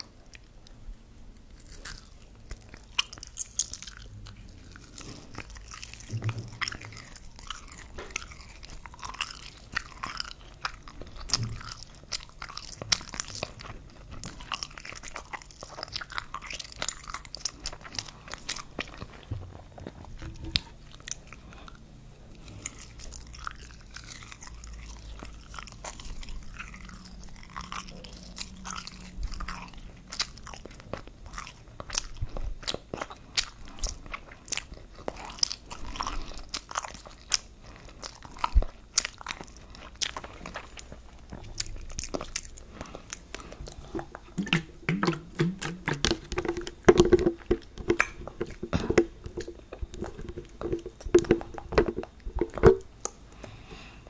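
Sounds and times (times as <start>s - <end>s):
person chewing: 0.0s - 54.0s
small sharp mouth clicks: 43.2s - 51.6s.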